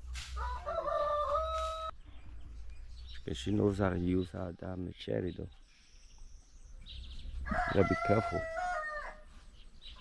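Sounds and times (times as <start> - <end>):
rooster crowing: 0.4 - 1.9, 7.4 - 9.2.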